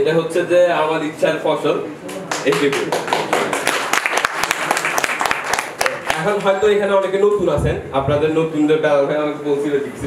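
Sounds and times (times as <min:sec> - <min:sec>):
audience applauding: 0:02.2 - 0:06.6.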